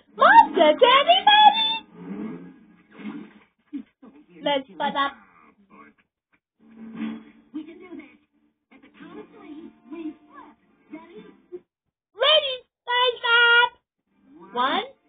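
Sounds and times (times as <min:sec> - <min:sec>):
television cartoon soundtrack: 0:00.0 - 0:15.0
high voice wailing: 0:00.1 - 0:01.8.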